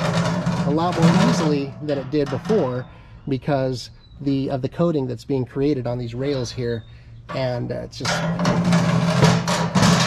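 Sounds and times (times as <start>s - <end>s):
metal grate scraping on rails: 0.0s - 2.9s, 7.3s - 10.0s.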